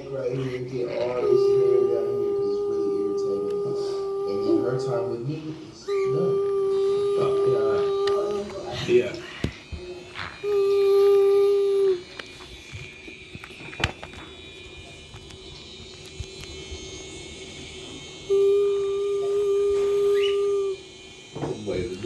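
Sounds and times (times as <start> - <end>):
person humming held notes: 0.0 - 12.9, 18.2 - 22.0.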